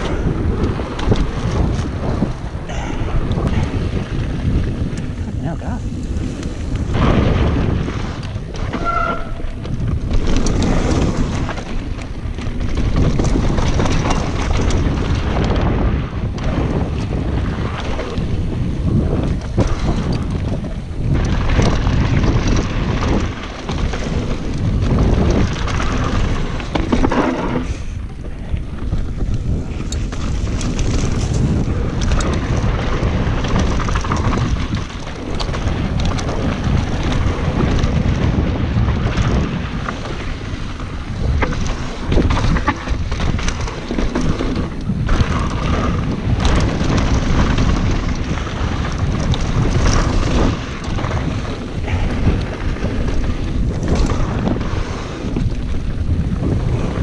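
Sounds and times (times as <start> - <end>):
bike knocking and rattling: 0.0 - 57.0
tyres rumbling on dirt: 0.0 - 57.0
wind buffeting microphone: 0.0 - 57.0.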